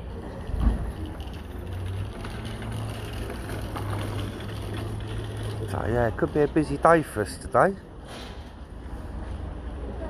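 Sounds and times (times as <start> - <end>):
vehicle engine rumble: 0.0 - 10.0.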